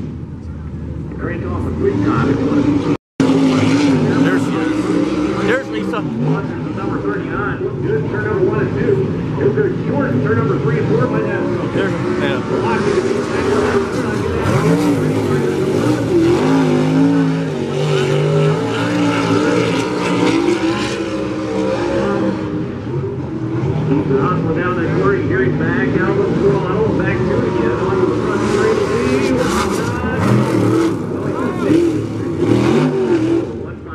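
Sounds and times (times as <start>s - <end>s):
race car engines revving: 0.0s - 33.9s.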